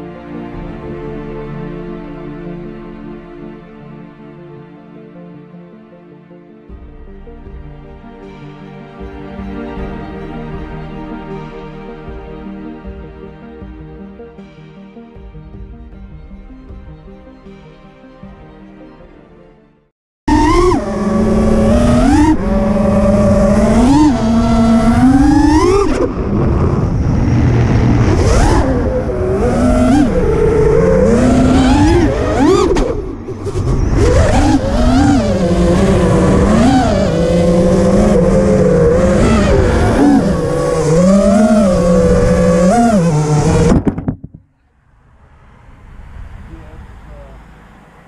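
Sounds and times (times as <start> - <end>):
drone motors whining: 20.3 - 44.2.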